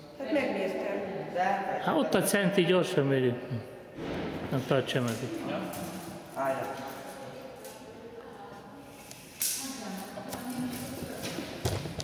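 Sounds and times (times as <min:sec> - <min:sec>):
deep thump: 0:04.0 - 0:04.6.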